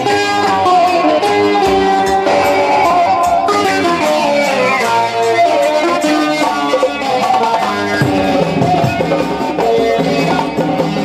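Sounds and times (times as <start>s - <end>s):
electric guitar melodic line: 0.0s - 11.0s.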